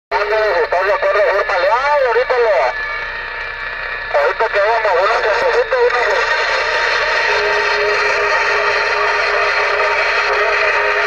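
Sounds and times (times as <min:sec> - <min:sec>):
voice over cb radio speaker: 0:00.1 - 0:02.8, 0:04.1 - 0:06.3
steady radio hiss: 0:00.1 - 0:11.0.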